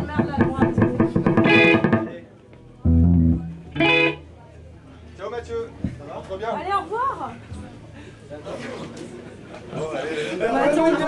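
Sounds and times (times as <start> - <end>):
bass guitar low note: 0.0 - 4.3
short loud pitched sound: 1.3 - 2.3.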